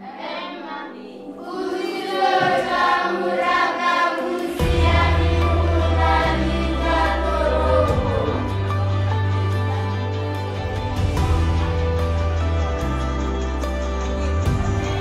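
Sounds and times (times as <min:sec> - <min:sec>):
choir singing: 0:00.0 - 0:11.6.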